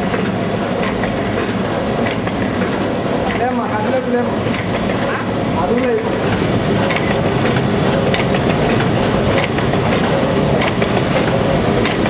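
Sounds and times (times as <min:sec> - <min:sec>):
machine mechanical hum: 0:00.0 - 0:12.0.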